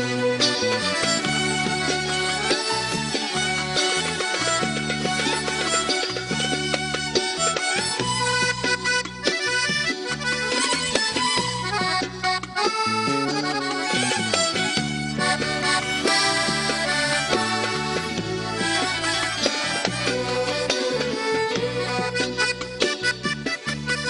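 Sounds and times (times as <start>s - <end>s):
accordion melody: 0.0s - 24.0s
hand drums: 0.0s - 24.0s
violin: 0.0s - 24.0s.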